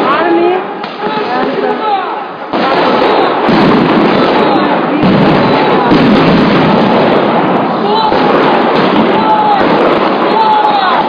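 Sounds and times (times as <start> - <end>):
crowd noise: 0.0 - 11.0
fireworks popping and banging: 0.0 - 11.0.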